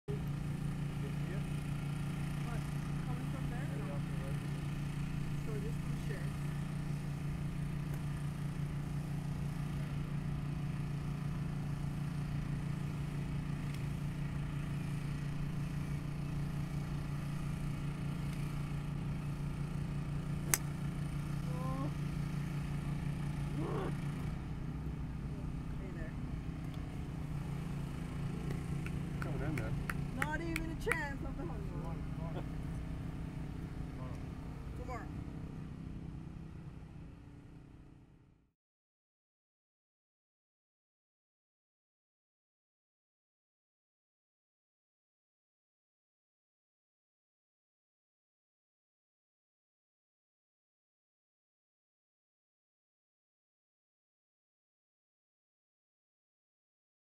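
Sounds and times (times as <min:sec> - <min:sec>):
low mechanical hum: 0:00.1 - 0:38.5
golf club striking ball: 0:20.4 - 0:21.0.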